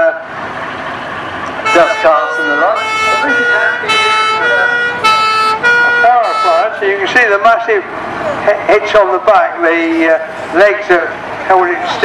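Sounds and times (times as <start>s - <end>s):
fire engine two-tone horn: 1.6s - 6.8s.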